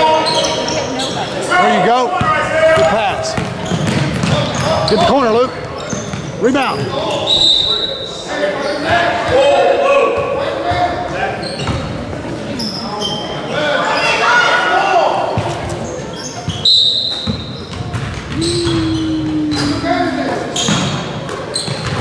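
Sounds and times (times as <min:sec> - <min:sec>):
echoing shouting voices: 0:18.3 - 0:20.6.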